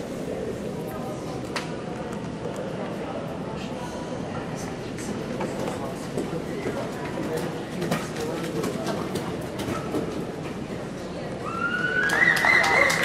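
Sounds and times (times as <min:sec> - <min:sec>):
echoing chatter of voices: 0:00.0 - 0:13.0.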